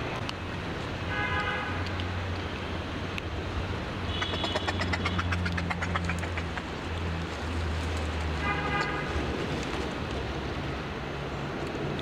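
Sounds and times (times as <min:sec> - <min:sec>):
rapid high ticks: 0:04.1 - 0:07.3.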